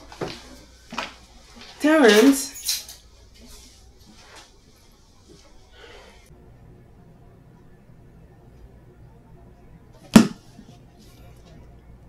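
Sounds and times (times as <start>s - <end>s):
book snapped shut: 10.2s - 10.4s.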